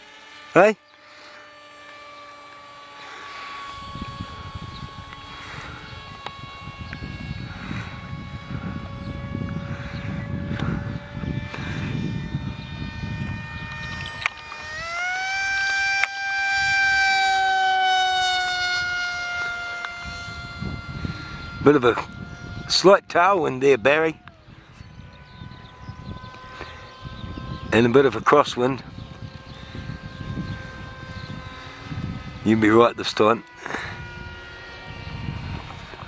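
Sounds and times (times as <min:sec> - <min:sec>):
model plane motor whining: 0:00.0 - 0:36.0.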